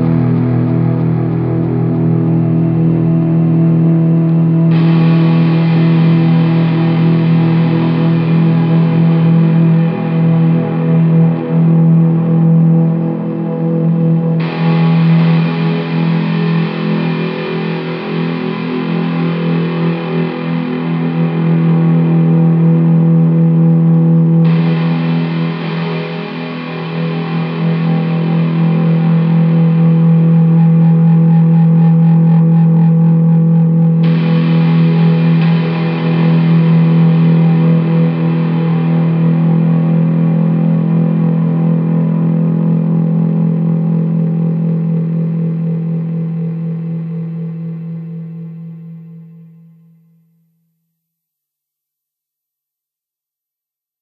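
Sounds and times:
distorted electric guitar drone: 0:00.0 - 0:49.8.

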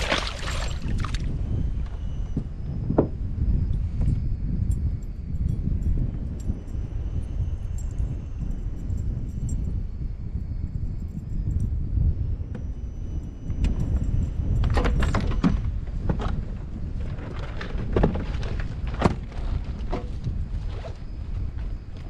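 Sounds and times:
wind rumble on microphone: 0:00.0 - 0:22.0.

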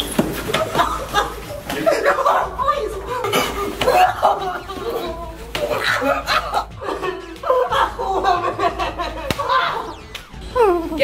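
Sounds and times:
people laughing: 0:00.3 - 0:11.0.

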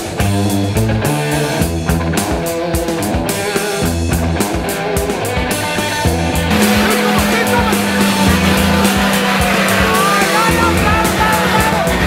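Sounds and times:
off-road vehicle engine running hard: 0:00.0 - 0:12.0
rock music: 0:00.0 - 0:12.0.

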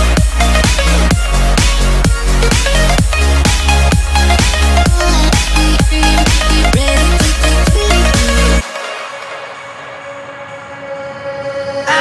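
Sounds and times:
rising synth sweep: 0:00.0 - 0:12.0.

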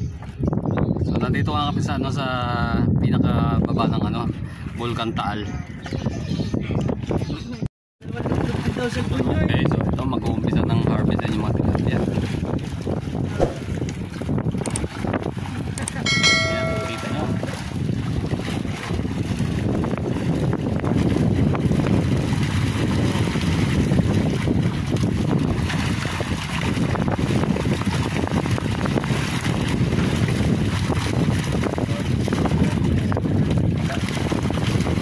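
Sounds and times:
wind on microphone: 0:00.0 - 0:35.0
fish splashing in a net: 0:08.2 - 0:09.2, 0:12.0 - 0:15.9, 0:17.9 - 0:35.0
short bright chime: 0:16.1 - 0:17.7.

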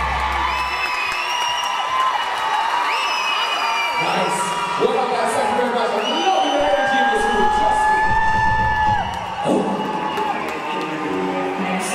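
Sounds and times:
long high scream: 0:00.0 - 0:04.9
audience cheering and whooping: 0:00.0 - 0:11.9.

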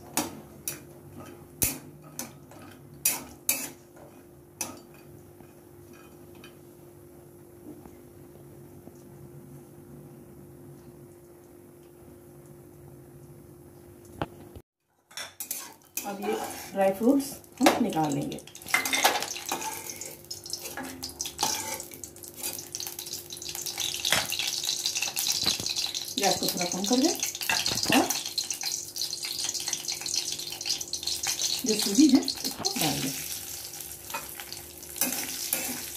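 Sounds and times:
nuts frying in oil: 0:15.4 - 0:35.9.

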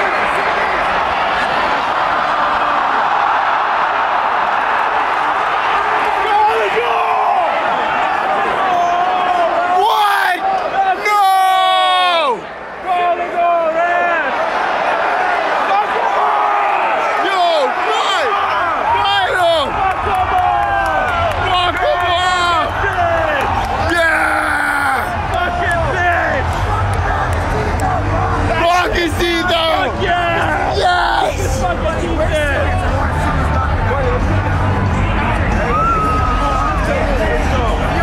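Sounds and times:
crowd yelling and shouting: 0:00.0 - 0:38.0.

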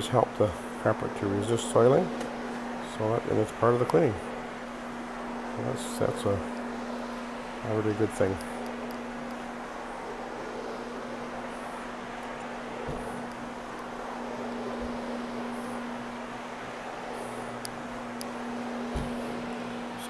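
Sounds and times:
carpet cleaning machine humming: 0:00.0 - 0:20.0.

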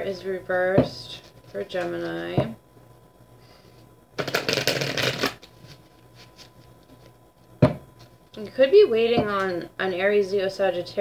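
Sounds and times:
cards shuffling: 0:04.2 - 0:07.1.

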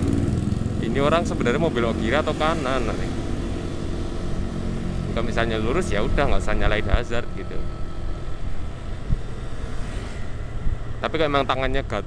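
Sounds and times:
scooter engine and road rumble: 0:00.0 - 0:12.0
wind buffeting microphone: 0:08.4 - 0:11.0.

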